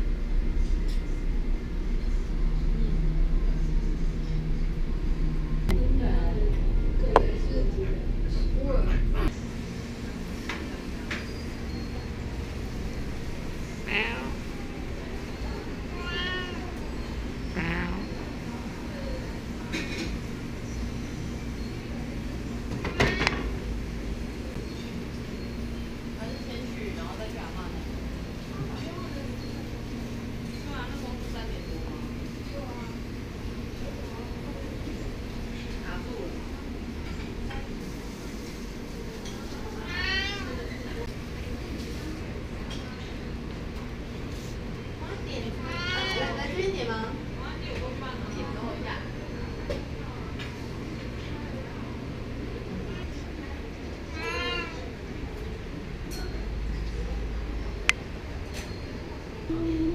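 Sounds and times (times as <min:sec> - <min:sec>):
cat meowing: 0:13.8 - 0:14.5, 0:15.9 - 0:16.8, 0:39.8 - 0:40.8, 0:54.1 - 0:54.8.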